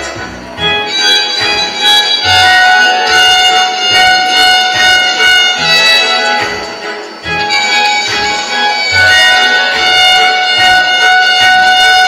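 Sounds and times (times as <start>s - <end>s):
violin long bowed note: 0.0s - 12.0s.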